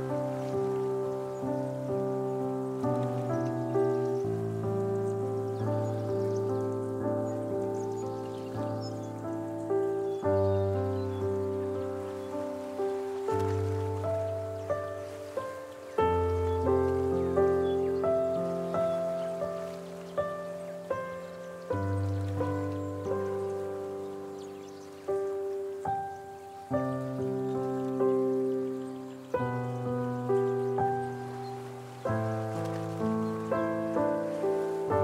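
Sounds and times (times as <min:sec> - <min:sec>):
soft solo piano: 0:00.0 - 0:35.0.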